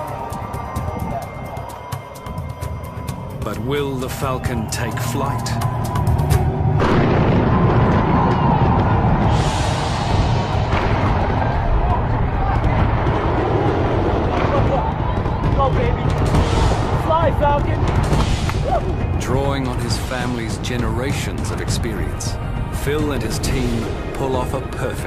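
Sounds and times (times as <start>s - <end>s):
music: 0.0s - 25.0s
fireworks booming: 6.8s - 19.2s.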